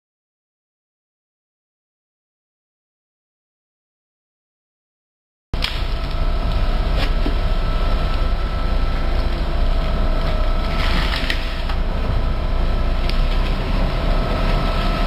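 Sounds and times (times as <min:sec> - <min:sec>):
faint steady whine: 0:05.6 - 0:15.0
machine engine rumble: 0:05.6 - 0:15.0.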